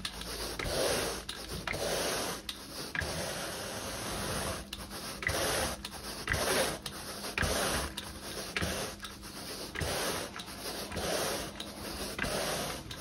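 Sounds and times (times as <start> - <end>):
rake rasping through carpet: 0.0 - 13.0.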